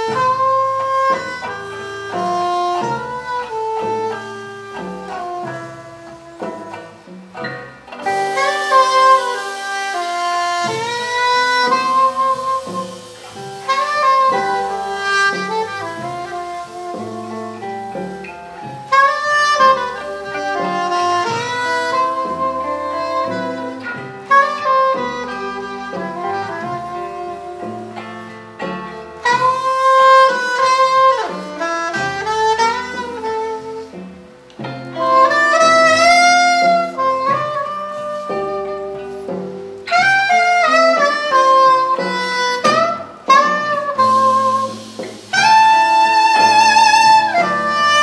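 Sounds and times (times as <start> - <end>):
bass guitar: 0.0 - 48.0
drums: 0.0 - 48.0
electric guitar: 0.0 - 48.0
soprano saxophone melody: 0.0 - 48.0.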